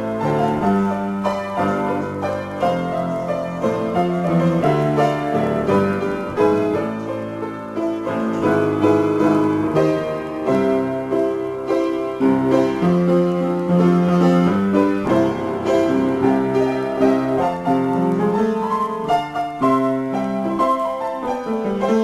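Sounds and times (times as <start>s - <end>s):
solo piano: 0.0s - 22.0s.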